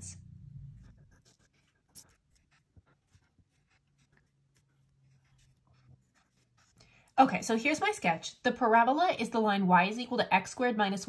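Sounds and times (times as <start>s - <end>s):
pen strokes on paper: 0.8s - 8.4s.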